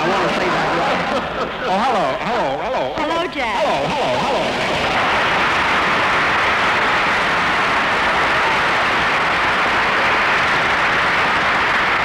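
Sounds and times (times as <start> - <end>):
audience applauding: 0.0 - 2.4, 3.0 - 12.0.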